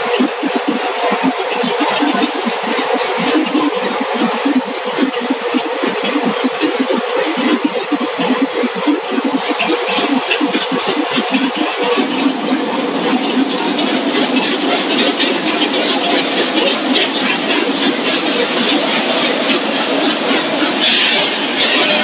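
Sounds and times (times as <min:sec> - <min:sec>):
low pulsing throb: 0:00.0 - 0:20.8
conveyor machinery rattling: 0:00.0 - 0:22.0.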